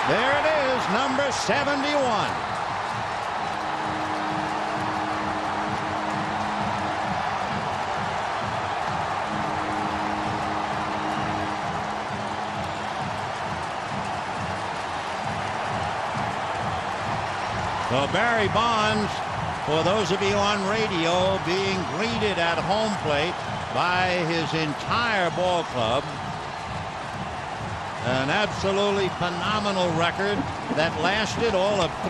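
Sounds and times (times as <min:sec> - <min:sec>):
crowd cheering: 0:00.0 - 0:32.0.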